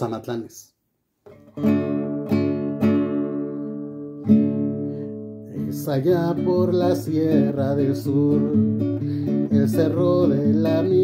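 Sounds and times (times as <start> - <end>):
classical guitar strumming chords: 1.2 - 11.0.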